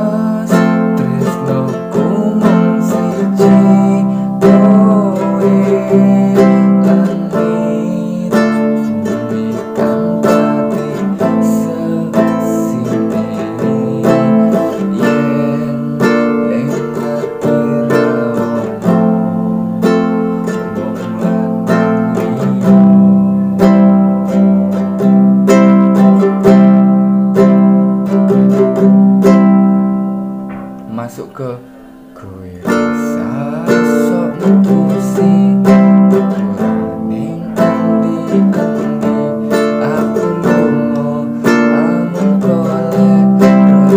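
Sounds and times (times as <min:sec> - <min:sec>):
classical guitar strumming chords: 0:00.0 - 0:43.9.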